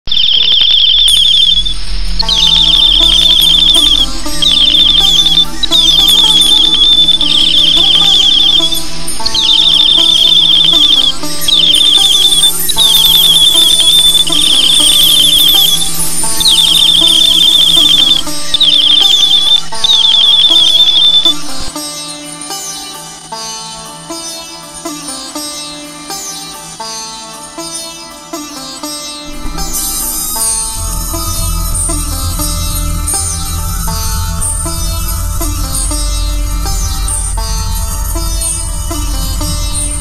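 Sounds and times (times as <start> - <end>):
background music: 1.1 - 40.0.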